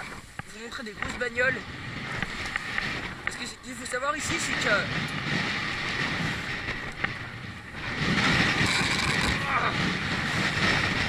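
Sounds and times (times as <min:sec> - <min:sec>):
low road rumble: 0:00.0 - 0:11.0
wind buffeting microphone: 0:00.0 - 0:11.0.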